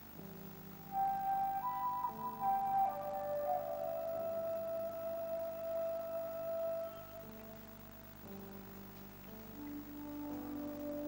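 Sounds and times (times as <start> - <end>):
soft instrumental music: 0.0 - 11.0.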